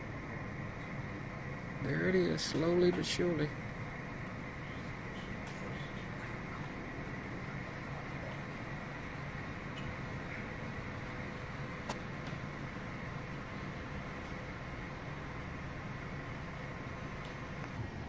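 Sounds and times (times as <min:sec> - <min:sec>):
ventilation noise: 0:00.0 - 0:18.0.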